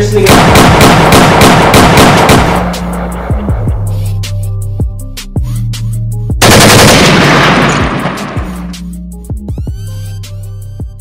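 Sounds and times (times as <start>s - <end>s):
automatic gunfire: 0.2s - 2.8s, 6.4s - 8.7s
hip hop beat with deep bass: 2.6s - 6.4s, 8.5s - 11.0s.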